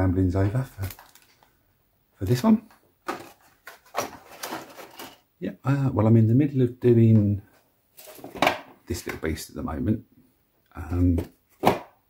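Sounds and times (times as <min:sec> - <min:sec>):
knocks and scrapes of plastic parts: 0:02.7 - 0:05.3, 0:08.0 - 0:09.2.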